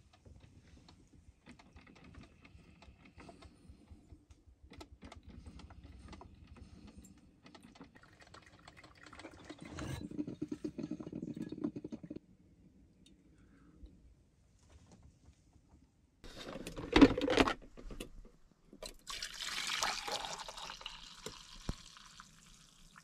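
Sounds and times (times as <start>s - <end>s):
coffee maker crackling and gurgling: 7.7s - 12.2s, 18.8s - 23.0s.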